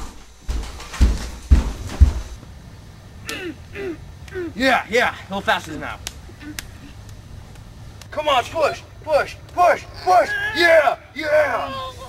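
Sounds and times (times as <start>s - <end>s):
heavy deep thumps: 0.0s - 2.4s.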